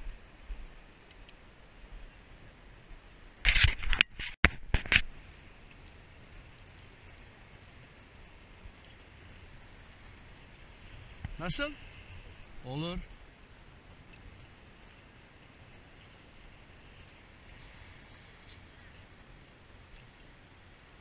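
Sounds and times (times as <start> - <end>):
water: 0.0 - 21.0
wind: 0.0 - 21.0.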